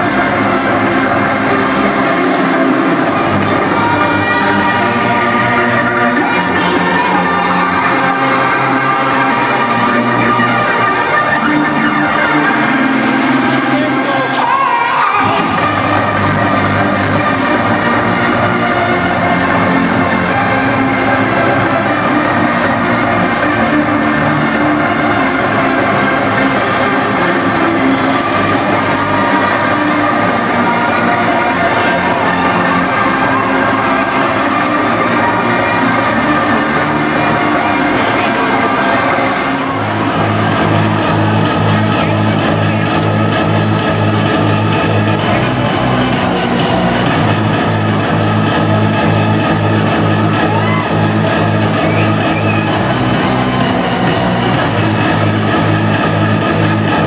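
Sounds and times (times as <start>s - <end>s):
fast bass beat: 0.0s - 57.0s
loud electronic dance music: 0.0s - 57.0s.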